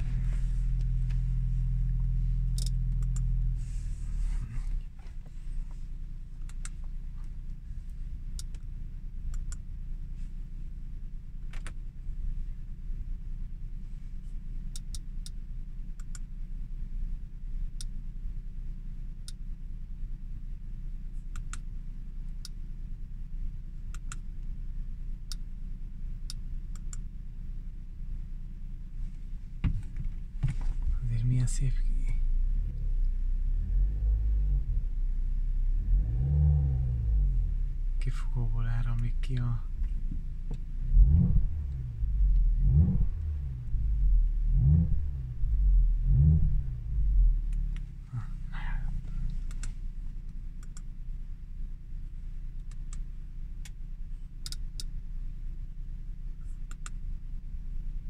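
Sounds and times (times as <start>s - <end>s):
car engine revving: 0.0s - 4.9s, 30.9s - 50.8s
car engine idling: 0.0s - 58.0s
sharp light clicks: 16.0s - 16.3s, 23.9s - 24.3s, 26.2s - 27.1s, 54.4s - 54.9s.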